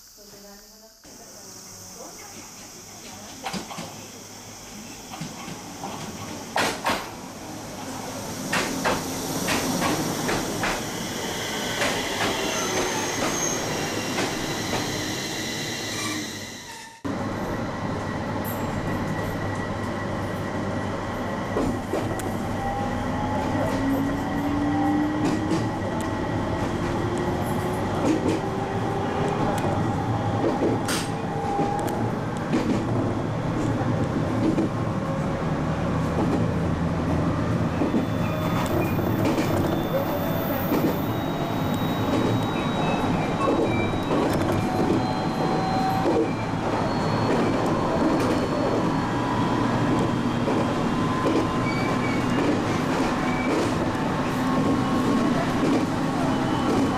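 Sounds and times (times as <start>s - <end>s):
electric train pulling in: 0.2s - 56.9s.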